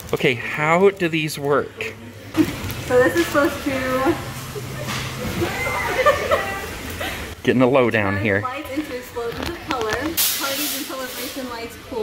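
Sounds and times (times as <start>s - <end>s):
woman talking: 2.8s - 4.3s, 8.4s - 12.0s
sharp hiss of noise: 10.1s - 11.6s.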